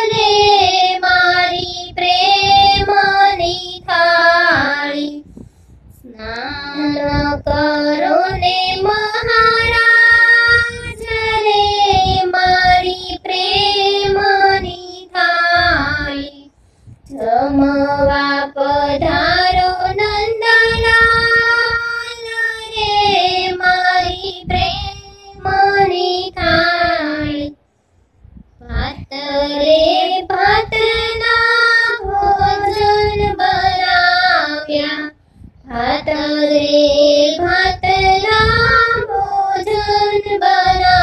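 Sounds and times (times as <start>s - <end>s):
high voice singing devotional song: 0.0s - 41.0s.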